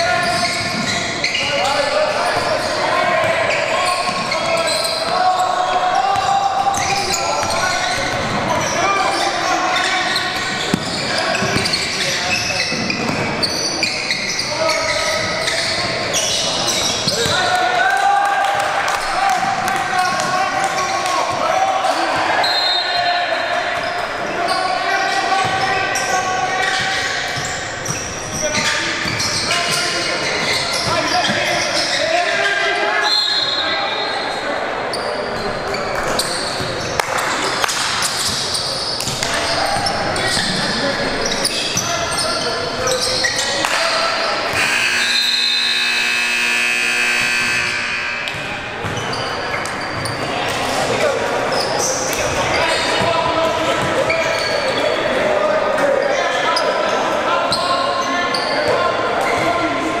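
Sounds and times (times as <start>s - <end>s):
players and spectators voices: 0.0s - 60.0s
basketball bouncing: 46.7s - 50.1s.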